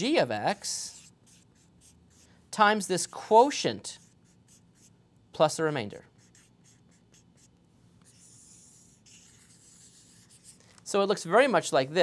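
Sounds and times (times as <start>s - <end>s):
marker scratching on paper: 0.4s - 4.9s, 6.0s - 10.6s.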